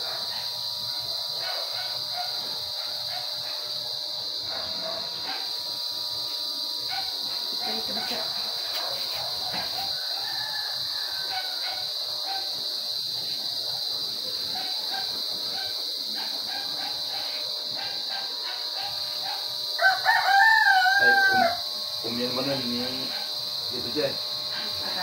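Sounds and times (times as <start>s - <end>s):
high-pitched buzz: 0.0s - 25.0s
rooster crowing: 9.5s - 12.4s, 18.7s - 21.8s.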